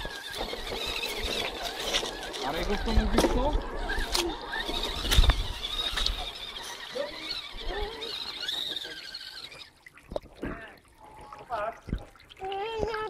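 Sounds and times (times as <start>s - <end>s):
toy truck electric motor whining: 0.0s - 9.8s.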